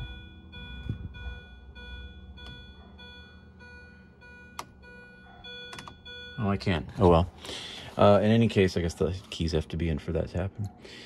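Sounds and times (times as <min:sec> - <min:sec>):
electronic warning tone: 0:00.0 - 0:06.8.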